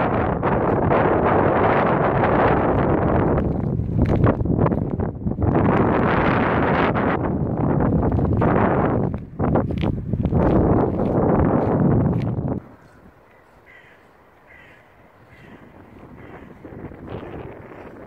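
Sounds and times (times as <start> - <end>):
wind buffeting microphone: 0.0 - 18.0
faint harsh bird calls: 12.9 - 16.8.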